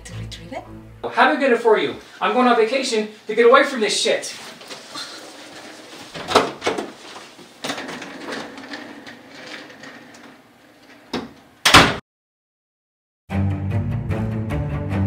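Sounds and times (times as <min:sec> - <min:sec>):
door thud: 0:11.1 - 0:12.0.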